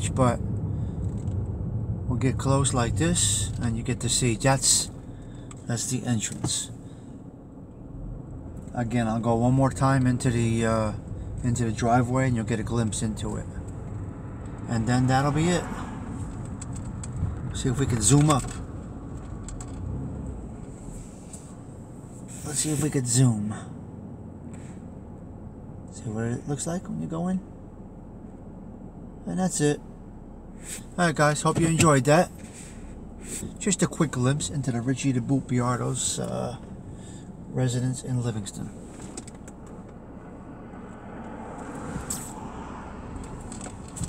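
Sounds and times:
car engine idling: 0.0s - 44.0s.

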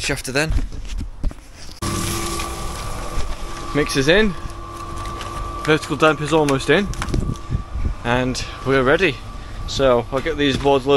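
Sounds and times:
cement mixer humming: 1.8s - 10.9s
wind rumble on microphone: 6.6s - 9.8s.

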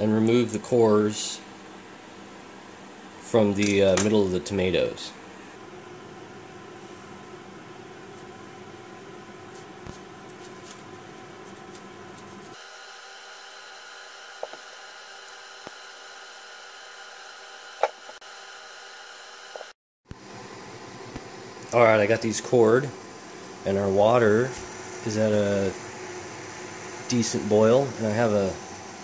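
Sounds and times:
faint room hum: 0.0s - 18.2s, 19.4s - 29.0s.

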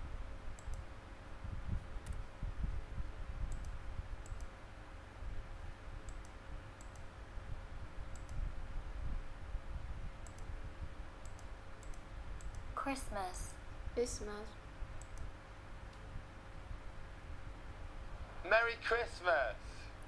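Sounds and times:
computer mouse clicks: 0.6s - 0.9s, 2.0s - 2.3s, 3.5s - 4.5s, 6.0s - 7.1s, 8.1s - 8.4s, 10.2s - 10.5s, 11.2s - 12.7s, 15.0s - 15.3s
keyboard typing: 11.2s - 12.6s.

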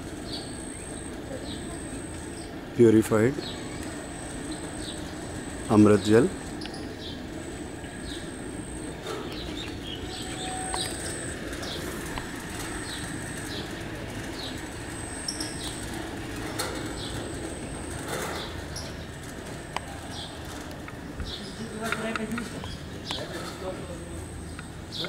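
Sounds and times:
small birds chirping: 0.2s - 25.0s.

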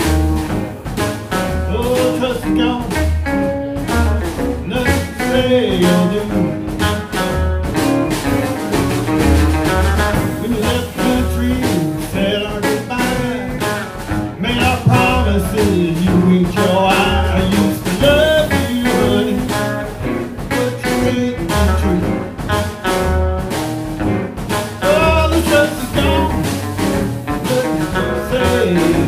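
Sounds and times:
drum kit beat: 0.0s - 29.0s
electric guitar: 0.0s - 29.0s
upright double bass: 0.0s - 29.0s.

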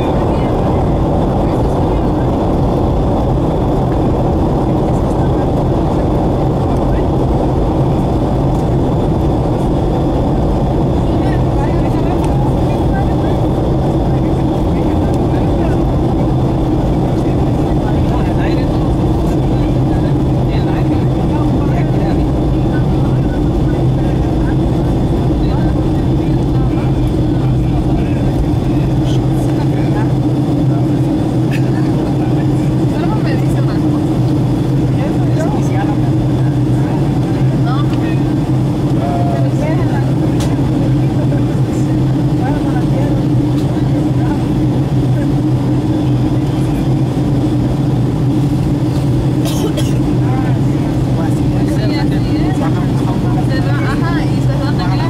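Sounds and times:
airplane cabin engine roar: 0.0s - 55.0s.

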